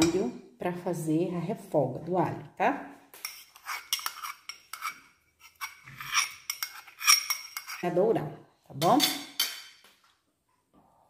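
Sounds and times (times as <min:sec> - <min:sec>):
metal spoon clinking and scraping: 0:03.2 - 0:07.9, 0:08.8 - 0:09.8.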